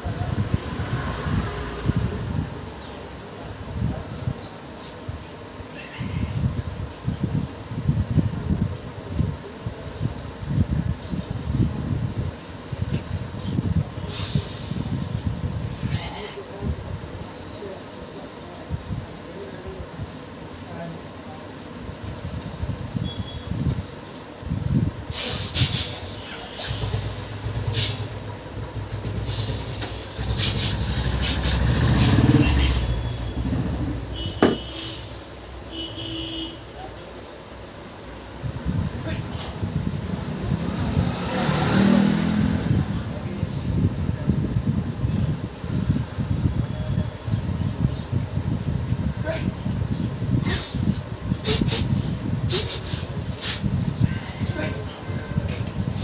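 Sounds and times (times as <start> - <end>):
air buffeting microphone: 0.0 - 56.0.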